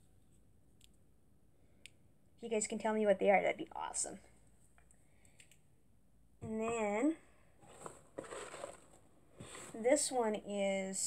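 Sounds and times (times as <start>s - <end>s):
rustling in cardboard box: 7.6s - 10.1s.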